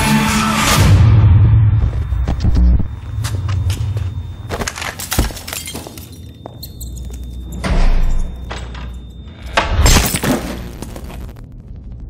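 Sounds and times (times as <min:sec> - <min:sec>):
debris crunching and crashing: 0:04.4 - 0:06.4
low rumble: 0:10.4 - 0:12.0.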